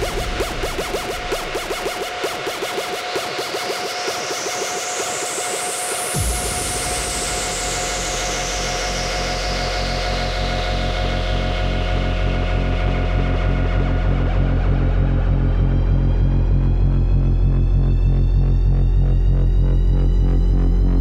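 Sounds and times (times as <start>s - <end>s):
electronic dance music: 0.0s - 6.1s.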